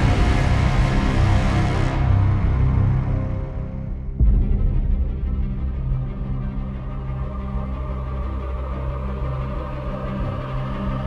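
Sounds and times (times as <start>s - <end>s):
dark ominous background music: 0.0s - 11.0s.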